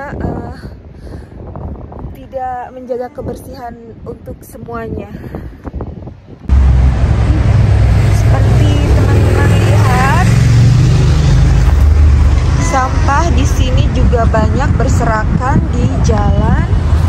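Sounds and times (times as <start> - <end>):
city traffic rumble: 0.0 - 17.0
voices of passers-by: 0.0 - 17.0.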